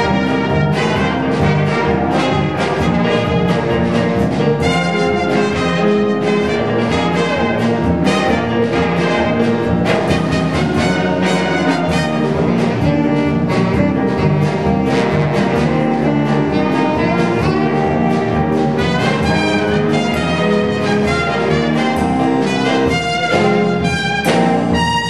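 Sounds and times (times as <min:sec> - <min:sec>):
band playing a march: 0:00.0 - 0:25.0
drum kit steady beat: 0:00.0 - 0:25.0.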